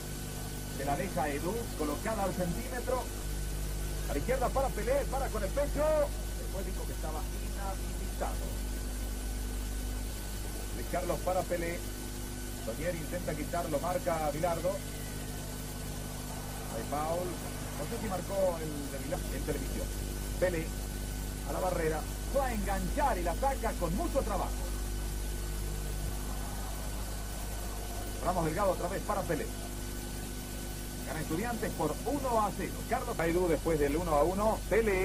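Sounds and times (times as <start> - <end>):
low hum and hiss: 0.0 - 35.0
man commentating: 0.8 - 3.2, 3.9 - 8.7, 16.3 - 20.8, 21.4 - 24.8, 27.8 - 29.8.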